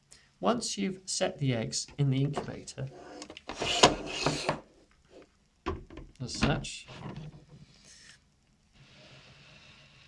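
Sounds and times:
plastic dome scraping: 2.3s - 5.3s.

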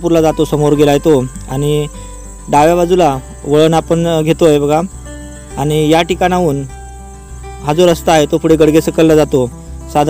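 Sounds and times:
man speaking: 0.0s - 4.9s, 5.5s - 6.7s, 7.6s - 10.0s
crickets chirring: 0.0s - 10.0s.

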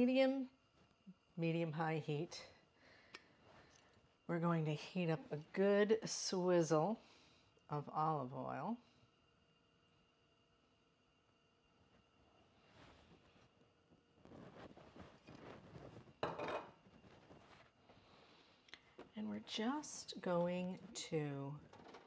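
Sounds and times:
kitchen handling sounds: 16.0s - 16.8s
glass bottle set down on counter: 16.2s - 16.8s.

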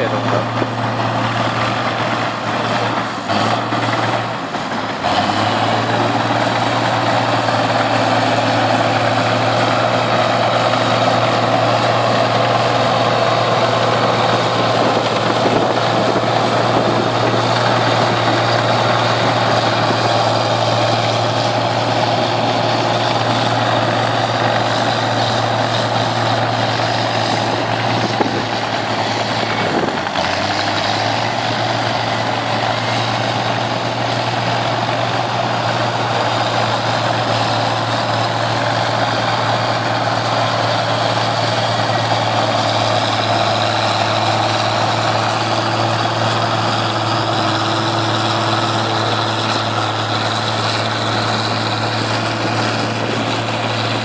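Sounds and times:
crawler dozer engine running under load: 0.0s - 54.0s.

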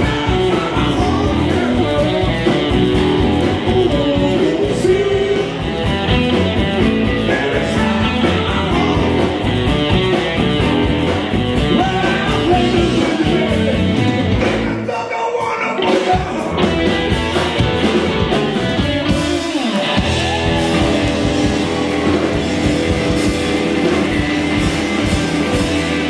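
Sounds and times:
man singing: 0.0s - 5.9s, 6.8s - 9.5s, 11.6s - 17.1s
blues-rock band playing: 0.0s - 26.0s.

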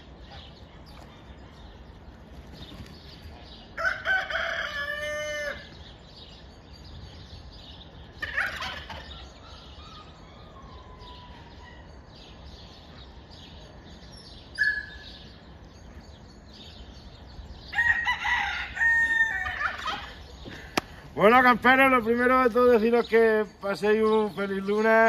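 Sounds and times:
rooster crowing: 3.8s - 5.8s, 17.7s - 19.9s
poultry calls: 8.1s - 12.0s.

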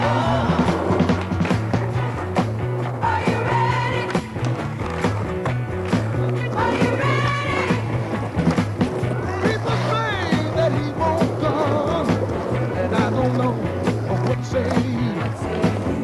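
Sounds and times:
soundtrack music with bass line: 0.0s - 16.0s.

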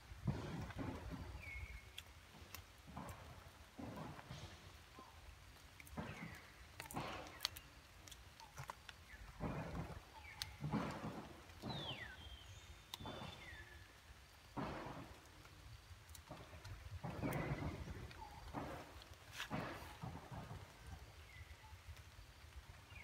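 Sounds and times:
water drips and clicks: 5.0s - 13.7s.

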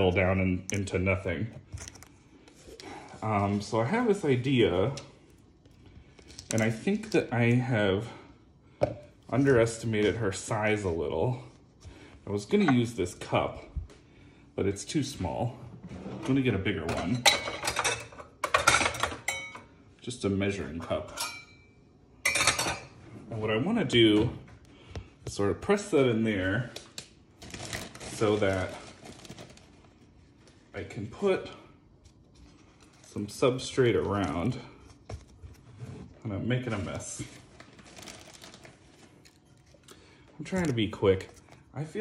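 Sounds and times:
kitchenware clattering: 15.9s - 19.8s, 21.0s - 23.0s
rustling and crackling of wood flakes: 27.4s - 30.7s, 36.9s - 41.6s.

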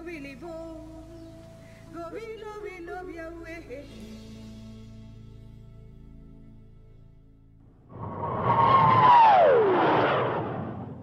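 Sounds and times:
tone sliding down in pitch: 7.9s - 11.0s
whoosh: 7.9s - 11.0s.

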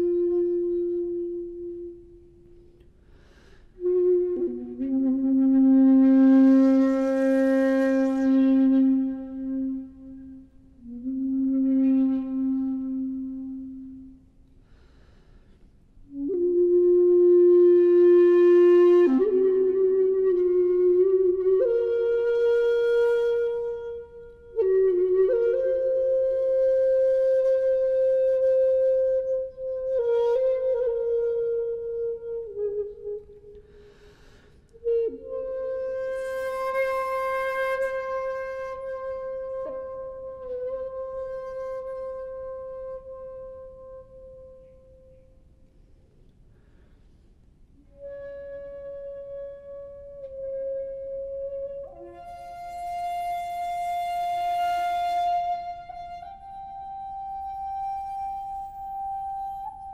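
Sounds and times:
bamboo flute long held notes: 0.0s - 45.7s, 47.8s - 59.9s.

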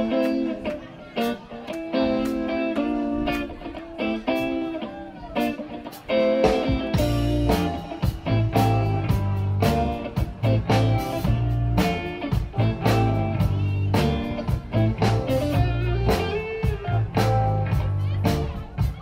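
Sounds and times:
bass guitar: 0.0s - 19.0s
drums: 0.0s - 19.0s
electric guitar chords: 0.0s - 19.0s.

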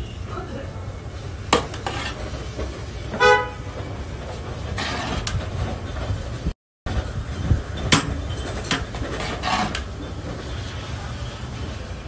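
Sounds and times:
vehicle horn toot: 3.2s - 3.8s.

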